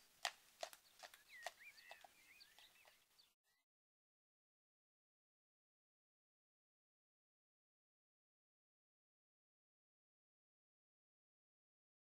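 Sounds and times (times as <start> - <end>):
horse hooves on tarmac: 0.0 - 3.4
birds chirping: 0.0 - 3.6.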